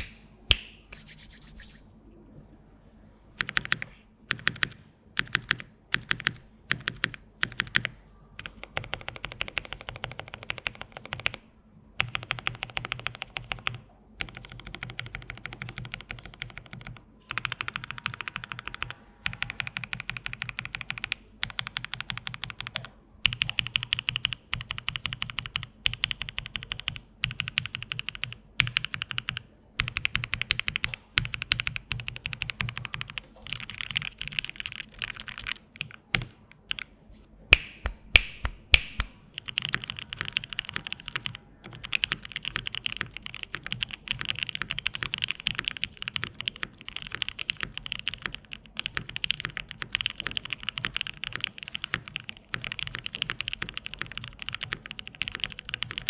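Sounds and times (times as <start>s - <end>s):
typing on mechanical keyboard: 3.4s - 11.4s, 12.0s - 36.9s, 39.3s - 56.0s.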